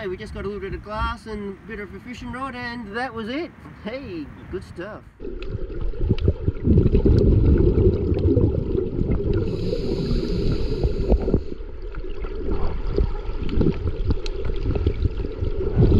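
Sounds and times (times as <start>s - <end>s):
underwater rumble and gurgle: 5.2s - 15.9s
scuba regulator hissing: 9.5s - 11.6s.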